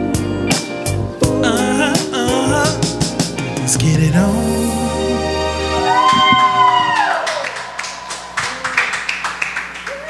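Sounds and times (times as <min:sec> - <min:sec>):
backing music: 0:00.0 - 0:09.9
scattered applause: 0:05.9 - 0:10.0.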